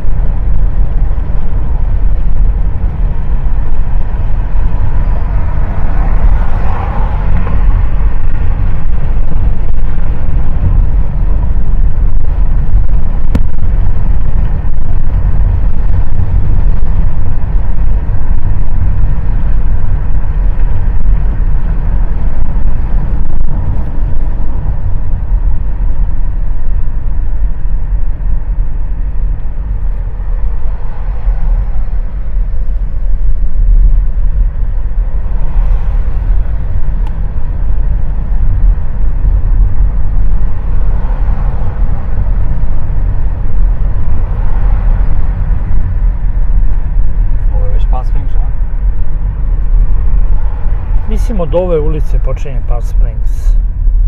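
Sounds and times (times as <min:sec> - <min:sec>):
car driving road rumble: 0:00.0 - 0:54.0.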